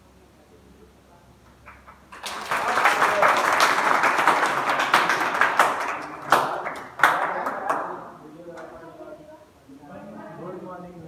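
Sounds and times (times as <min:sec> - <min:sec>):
group applauding: 0:01.6 - 0:08.2.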